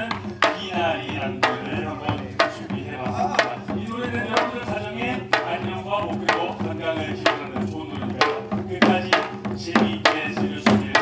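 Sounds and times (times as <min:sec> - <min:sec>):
folk percussion music: 0:00.0 - 0:11.0.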